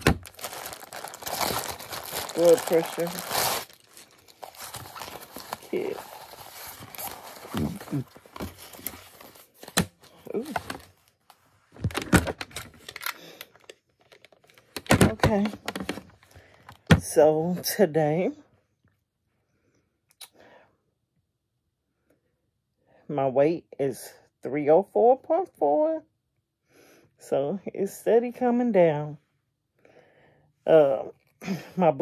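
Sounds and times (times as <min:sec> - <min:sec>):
plastic bag crinkling: 0:00.0 - 0:11.2
blood pressure monitor clicks and rattles: 0:11.8 - 0:16.9.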